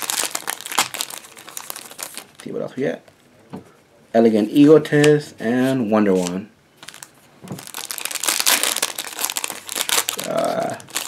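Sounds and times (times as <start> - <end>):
foil wrapper crinkling: 0.0 - 2.5, 6.2 - 11.0.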